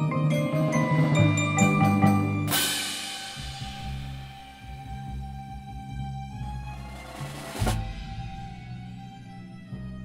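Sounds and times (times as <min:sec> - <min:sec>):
cymbal crash ringing: 0:02.5 - 0:05.0
low timpani notes: 0:06.8 - 0:08.9.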